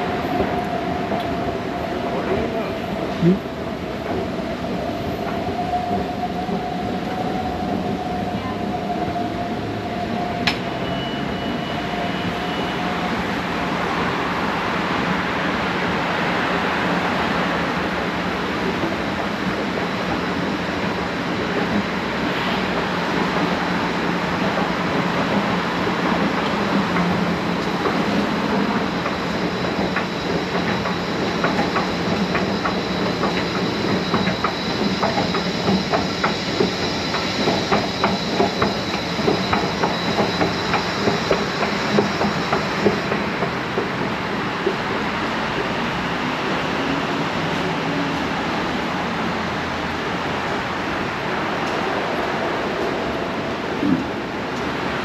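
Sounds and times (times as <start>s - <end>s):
train rumble: 0.0s - 55.0s.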